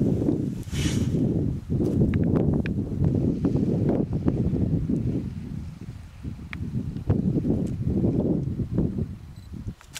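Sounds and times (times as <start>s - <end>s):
wind buffeting microphone: 0.0s - 9.9s.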